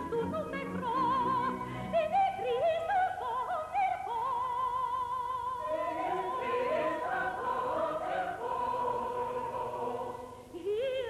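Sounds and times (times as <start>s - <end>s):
chorus singing with orchestra: 5.6s - 10.7s.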